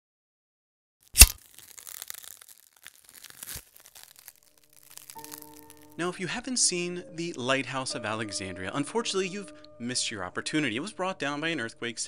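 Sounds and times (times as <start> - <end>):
faint crackling: 1.1 - 6.0
sharp loud crack: 1.2 - 2.5.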